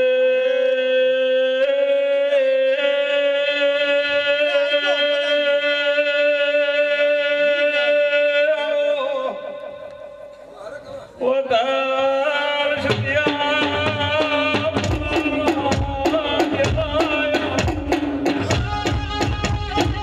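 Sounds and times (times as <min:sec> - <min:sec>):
man singing a long note: 0:00.0 - 0:10.3.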